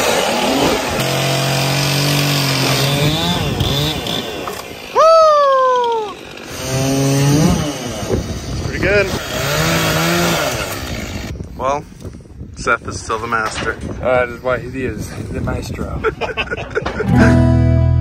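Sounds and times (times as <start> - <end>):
chainsaws cutting logs: 0.0 - 11.4.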